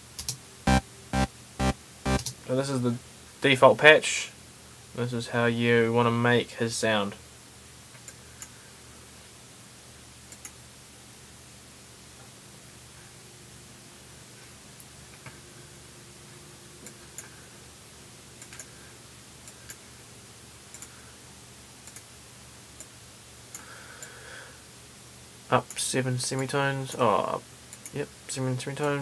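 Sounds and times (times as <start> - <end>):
background hiss and hum: 0.0 - 29.0
computer mouse clicks: 10.3 - 10.6, 18.4 - 18.7, 20.7 - 20.9, 21.8 - 22.1.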